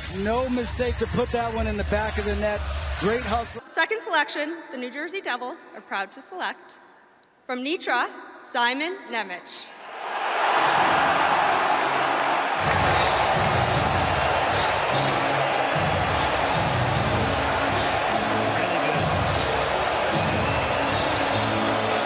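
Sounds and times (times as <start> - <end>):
crowd cheering and applauding: 10.0 - 22.0
music with bass line: 12.7 - 22.0.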